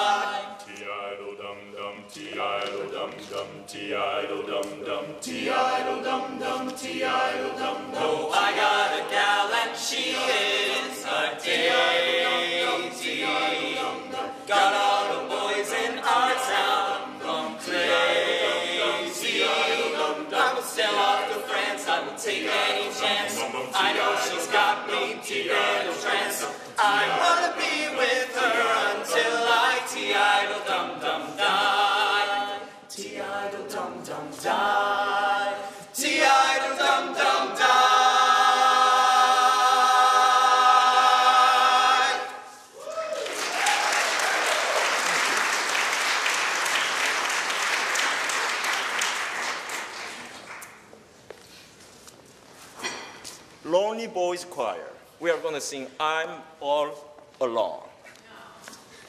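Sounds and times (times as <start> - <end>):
male a cappella ensemble singing: 0.0 - 42.7.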